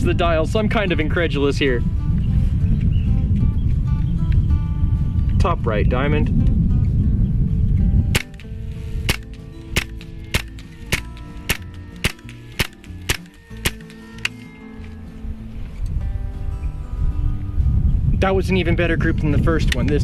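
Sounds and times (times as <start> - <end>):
air rifle shots: 8.1 - 14.4.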